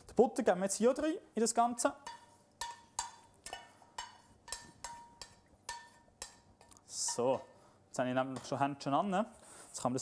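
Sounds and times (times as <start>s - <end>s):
light metal taps ringing: 2.0s - 6.4s.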